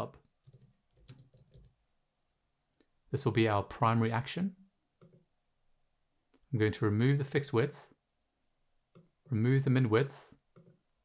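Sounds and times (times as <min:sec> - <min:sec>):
computer keyboard clicks: 0:00.3 - 0:01.7.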